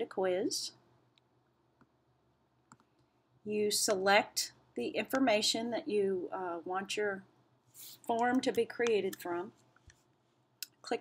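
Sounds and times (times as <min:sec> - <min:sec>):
faint computer mouse clicks: 0:02.7 - 0:03.1.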